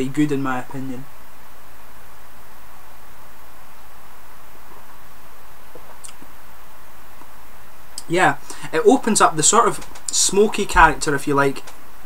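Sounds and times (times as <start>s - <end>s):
steady room hiss: 0.0s - 12.0s.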